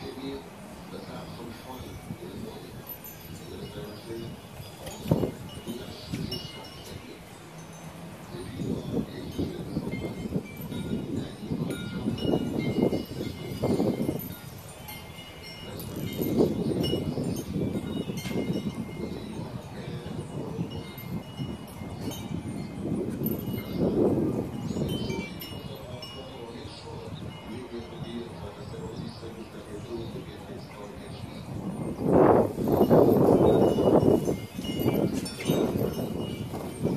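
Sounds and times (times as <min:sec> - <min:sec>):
wind chimes tinkling: 0:00.0 - 0:36.9.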